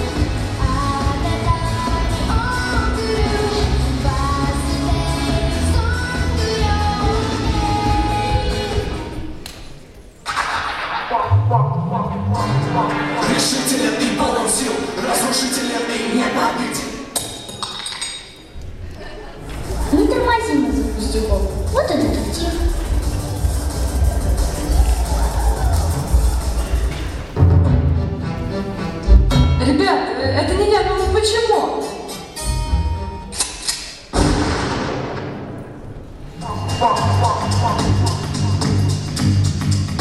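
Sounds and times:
music: 0:00.0 - 0:09.5, 0:11.1 - 0:16.6, 0:19.6 - 0:34.4, 0:36.4 - 0:40.0
loud thump in a hall: 0:34.1 - 0:36.0.

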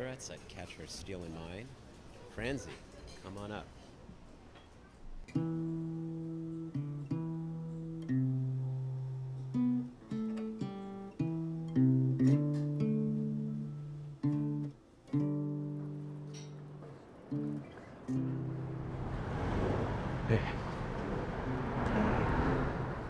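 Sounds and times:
acoustic guitar strummed chords: 0:05.3 - 0:19.0.

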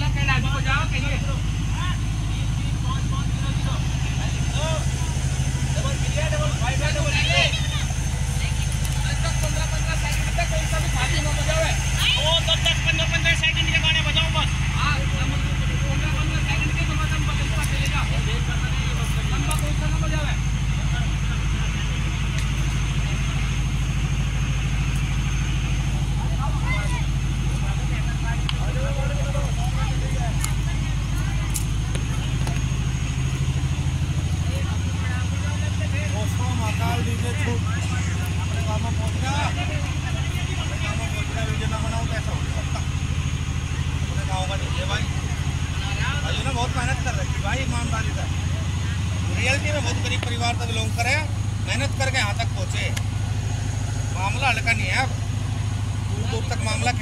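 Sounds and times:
engine idling: 0:00.0 - 0:57.0.

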